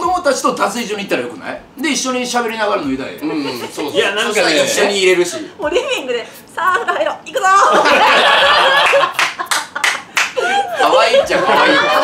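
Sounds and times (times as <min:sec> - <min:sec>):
people laughing: 0:03.2 - 0:12.0
person clapping: 0:08.8 - 0:10.6.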